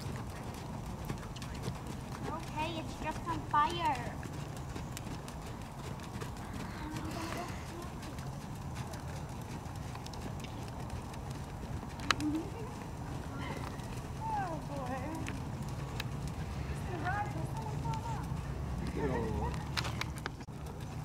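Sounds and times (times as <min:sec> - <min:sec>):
hoofbeats on sand: 0:00.0 - 0:21.0.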